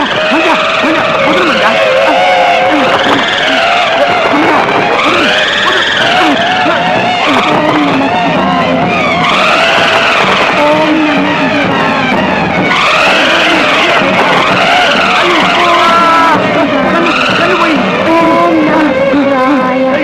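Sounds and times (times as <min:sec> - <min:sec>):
held tones: 0:00.0 - 0:19.3
swooping tones: 0:00.0 - 0:20.0.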